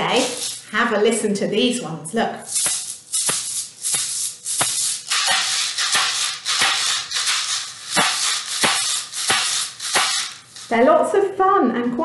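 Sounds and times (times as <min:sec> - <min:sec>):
maracas shaken in rhythm: 0:00.0 - 0:00.8, 0:02.5 - 0:10.9.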